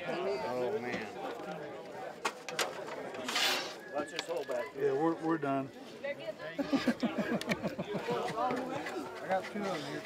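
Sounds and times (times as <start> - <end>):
low background voices: 0.0 - 10.0.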